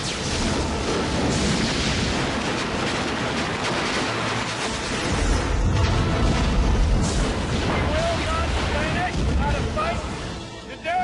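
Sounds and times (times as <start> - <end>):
explosion blast noise: 0.0 - 9.8
deep rumbling boom: 0.2 - 10.1.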